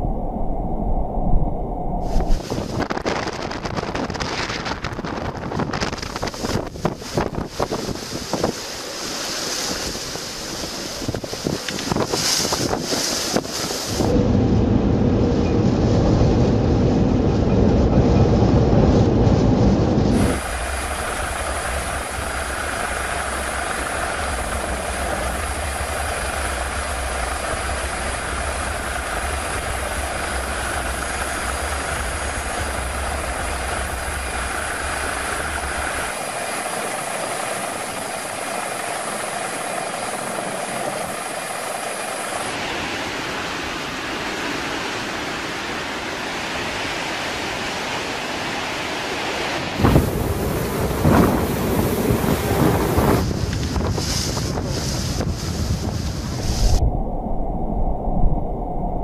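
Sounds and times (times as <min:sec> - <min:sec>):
low rumble: 0:00.0 - 0:07.6, 0:13.9 - 0:41.0, 0:49.8 - 0:59.0
helicopter engine and rotor: 0:20.2 - 0:42.6.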